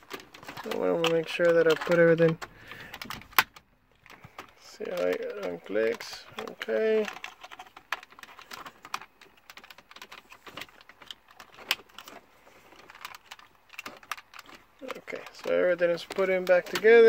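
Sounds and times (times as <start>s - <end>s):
plastic connectors clicking: 0.0s - 17.0s.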